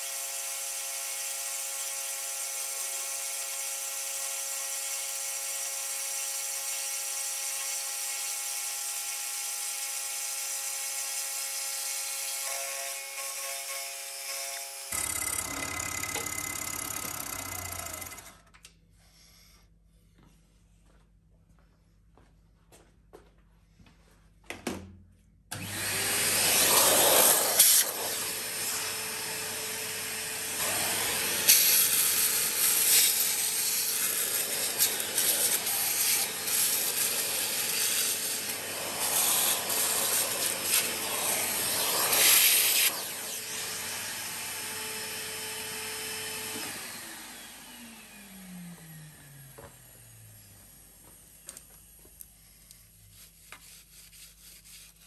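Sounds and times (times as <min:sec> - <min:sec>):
end mill cutting steel: 0:12.5 - 0:18.5, 0:25.5 - 0:48.0
milling machine motor: 0:14.9 - 0:18.5
spindle winding down whine: 0:14.9 - 0:18.6.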